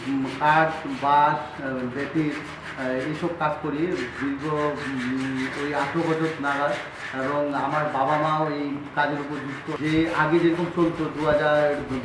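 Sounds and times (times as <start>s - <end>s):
hand tool scraping wood: 0.0s - 12.0s
man talking: 0.0s - 12.0s.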